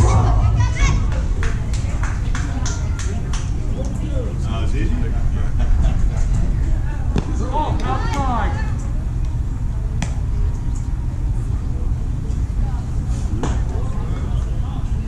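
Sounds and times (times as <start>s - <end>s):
low rumble: 0.0s - 13.1s.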